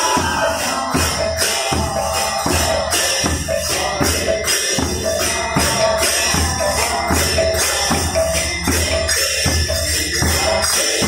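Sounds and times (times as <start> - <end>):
barrel drum beating: 0.0 - 10.7
hand cymbals jangling: 0.0 - 11.0.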